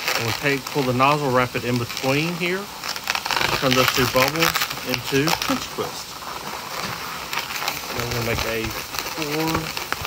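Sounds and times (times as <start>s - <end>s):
balloon rubbing and crinkling: 0.0s - 10.0s.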